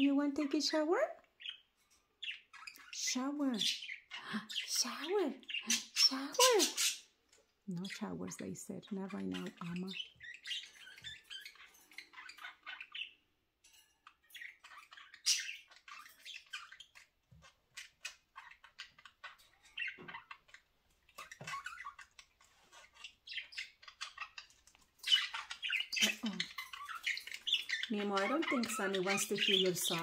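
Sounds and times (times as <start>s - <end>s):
budgerigars chirping and squawking: 0.0s - 30.0s.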